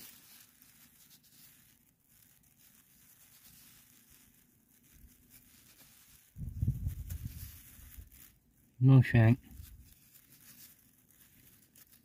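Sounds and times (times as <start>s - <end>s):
handling noise rustle: 0.0s - 12.0s.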